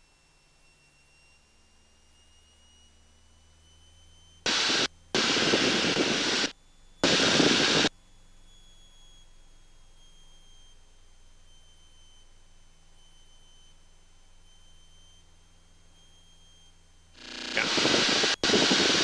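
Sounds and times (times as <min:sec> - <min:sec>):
cockpit engine and airflow noise: 0:04.5 - 0:07.9, 0:17.2 - 0:19.0
faint steady hum: 0:04.5 - 0:19.0.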